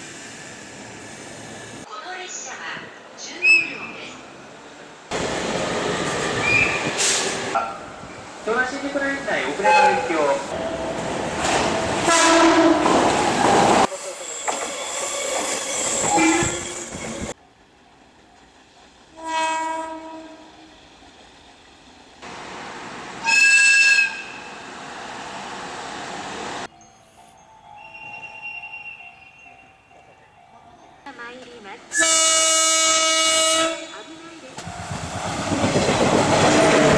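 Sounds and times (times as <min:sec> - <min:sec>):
passing freight train rumble: 0:04.2 - 0:36.9
locomotive horn blasts: 0:12.0 - 0:13.0, 0:16.1 - 0:16.6, 0:19.2 - 0:20.5, 0:23.2 - 0:24.4, 0:31.9 - 0:34.2.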